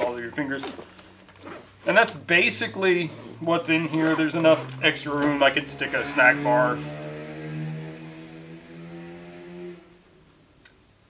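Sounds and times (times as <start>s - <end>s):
passing vehicle engine drone: 2.5s - 10.3s.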